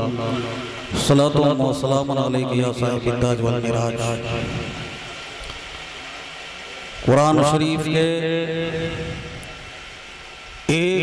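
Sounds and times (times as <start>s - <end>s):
sound system hiss: 0.0s - 11.0s.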